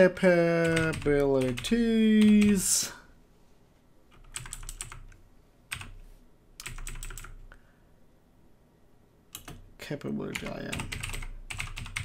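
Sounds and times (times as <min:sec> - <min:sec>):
typing on a keyboard: 0:00.6 - 0:02.6, 0:04.1 - 0:06.0, 0:06.6 - 0:07.4, 0:09.3 - 0:09.6, 0:10.3 - 0:12.0.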